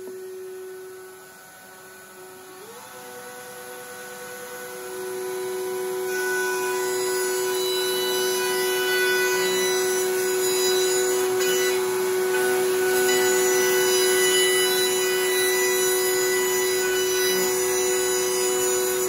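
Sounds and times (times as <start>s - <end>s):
router high whine: 0.0s - 19.0s
wood being cut: 0.0s - 19.0s.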